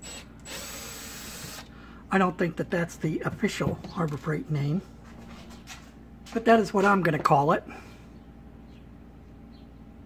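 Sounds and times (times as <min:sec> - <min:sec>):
cordless drill backing out screw: 0:00.0 - 0:01.7.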